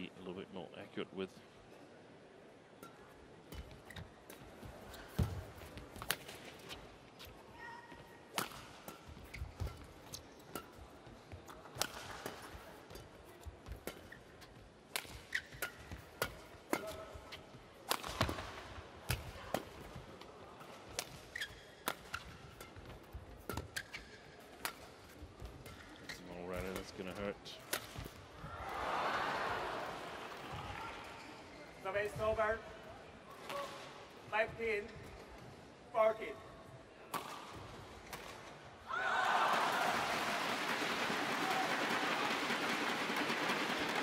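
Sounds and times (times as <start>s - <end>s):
rackets hitting shuttlecock: 2.8s - 6.8s, 8.3s - 20.0s, 20.6s - 28.2s, 37.1s - 38.5s
shoe squeaks on court floor: 15.2s - 16.0s, 21.3s - 22.3s, 23.6s - 24.4s, 25.8s - 26.8s
crowd cheering and applauding: 38.9s - 44.0s.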